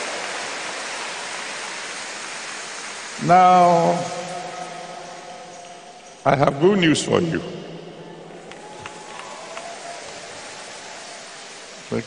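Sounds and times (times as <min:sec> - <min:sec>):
amplified room tone hiss: 0:00.0 - 0:12.0.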